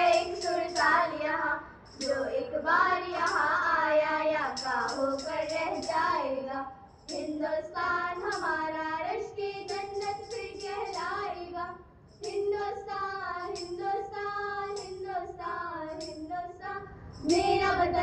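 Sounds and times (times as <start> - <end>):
girls singing into microphones: 0.0 - 18.0.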